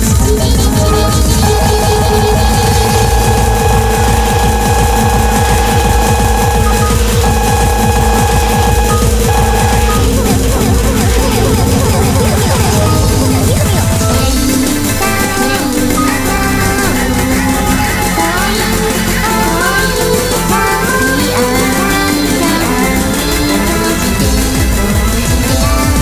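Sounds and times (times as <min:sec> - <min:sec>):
computer error sounds din: 0:00.0 - 0:26.0.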